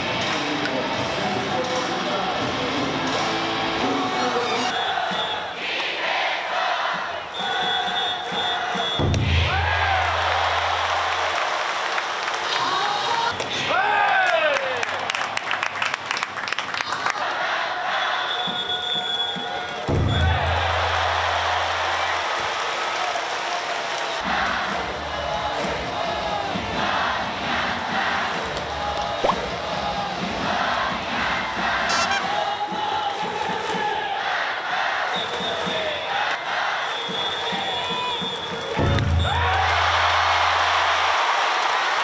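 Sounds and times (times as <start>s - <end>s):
crowd chanting and cheering: 0.0s - 14.8s, 16.8s - 18.7s, 19.4s - 42.0s.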